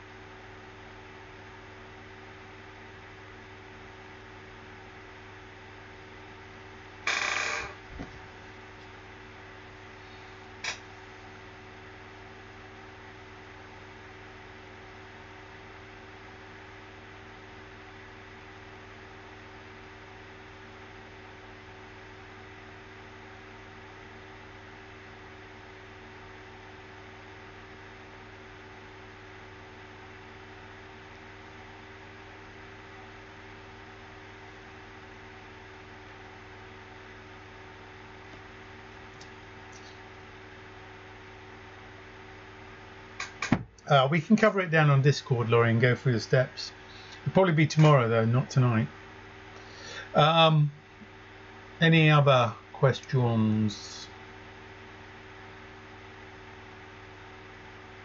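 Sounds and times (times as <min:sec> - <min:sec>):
electrical hum: 0:00.0 - 0:58.0.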